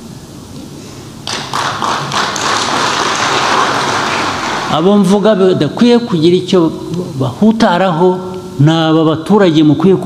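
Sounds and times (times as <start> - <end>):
audience applause: 1.2 - 4.8.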